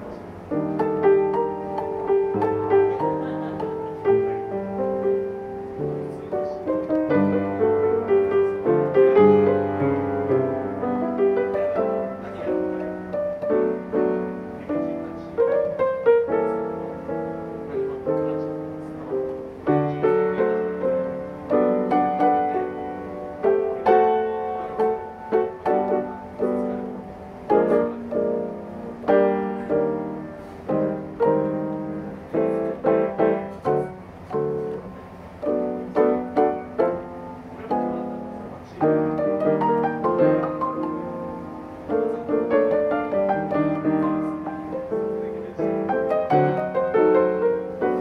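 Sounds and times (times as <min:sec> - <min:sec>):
solo jazz piano: 0:00.0 - 0:48.0.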